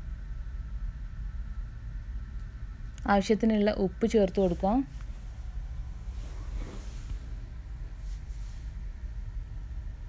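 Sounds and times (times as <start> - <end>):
faint high hum: 0.0 - 10.0
low background rumble: 0.0 - 10.0.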